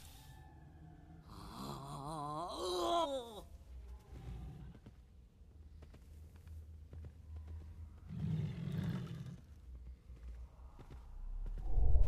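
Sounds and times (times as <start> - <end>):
low rumble: 9.6 - 12.0.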